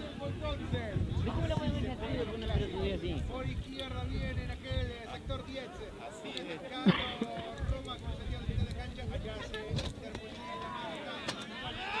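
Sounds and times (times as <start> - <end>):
players and spectators shouting: 10.2 - 12.0.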